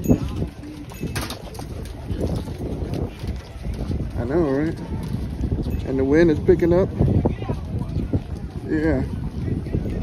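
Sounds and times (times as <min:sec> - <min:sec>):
voices of people walking: 0:00.0 - 0:10.0
wind gusting on microphone: 0:00.0 - 0:10.0.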